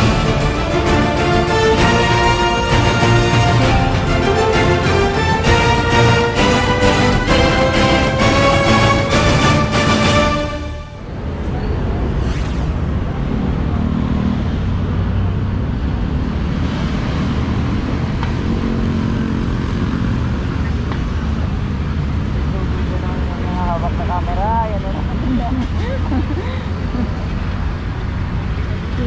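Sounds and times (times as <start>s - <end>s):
road traffic: 0.0s - 29.0s.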